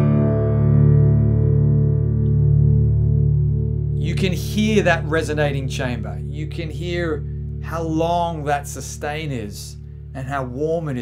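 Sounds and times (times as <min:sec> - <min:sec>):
slide guitar chord ringing: 0:00.0 - 0:09.9.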